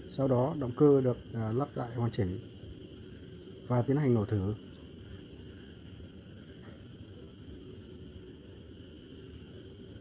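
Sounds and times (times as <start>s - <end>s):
thin high hiss: 0.0s - 10.0s.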